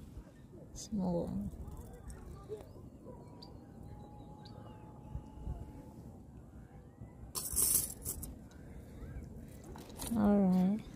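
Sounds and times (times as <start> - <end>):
faint steady tone: 0.0 - 10.9.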